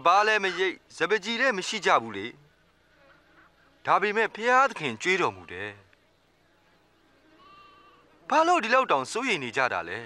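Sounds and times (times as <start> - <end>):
faint livestock bleat: 4.8 - 5.9, 7.1 - 8.3.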